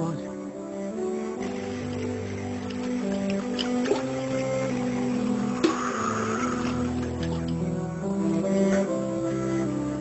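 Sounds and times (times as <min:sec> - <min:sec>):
slow background music: 0:00.0 - 0:10.0
water splashing in a basin: 0:01.4 - 0:07.6.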